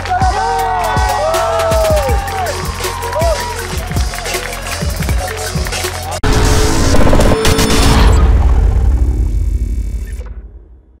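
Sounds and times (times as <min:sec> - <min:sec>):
deep bass boom: 0:06.2 - 0:11.0
music and effects sting: 0:06.2 - 0:11.0.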